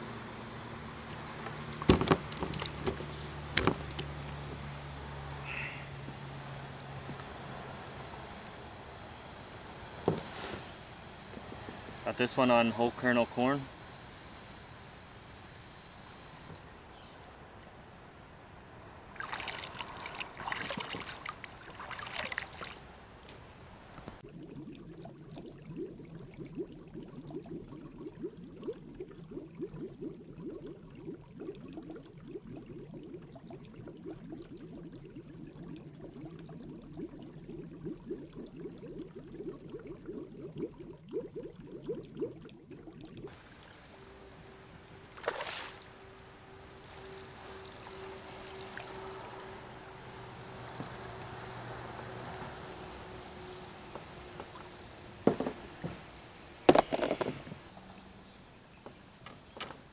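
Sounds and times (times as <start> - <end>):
muffled underwater rumble and gurgling: 24.2 - 43.3.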